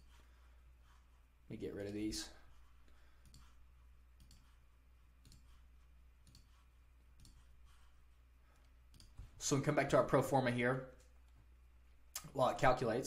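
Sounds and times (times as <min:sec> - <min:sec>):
computer mouse clicks: 0:03.2 - 0:03.6, 0:04.2 - 0:04.6, 0:05.2 - 0:05.6, 0:06.2 - 0:06.6, 0:07.2 - 0:07.5, 0:08.5 - 0:09.2.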